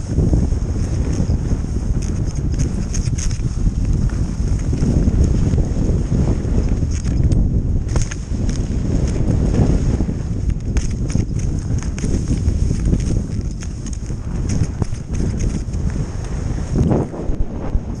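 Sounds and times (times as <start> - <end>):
skis scraping over snow: 0.0 - 18.0
wind rumble on microphone: 0.0 - 18.0
sharp clicks and clatter: 0.8 - 5.6, 6.6 - 9.2, 10.5 - 16.9.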